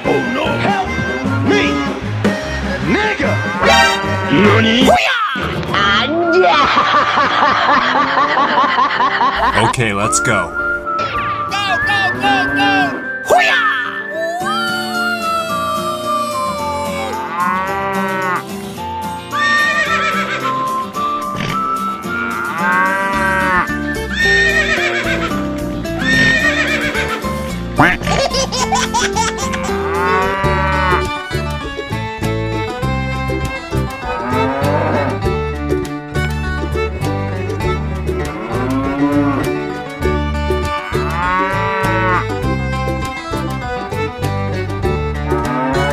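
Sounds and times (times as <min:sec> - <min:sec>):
cow mooing: 0:03.6 - 0:04.8, 0:17.1 - 0:18.5, 0:22.1 - 0:24.6, 0:26.0 - 0:26.8, 0:29.6 - 0:31.1, 0:34.0 - 0:35.2, 0:38.2 - 0:39.5, 0:41.0 - 0:42.3, 0:45.3 - 0:45.9
upbeat music with steady beat: 0:09.4 - 0:13.3
background music with steady beat: 0:09.4 - 0:13.6, 0:16.6 - 0:45.9.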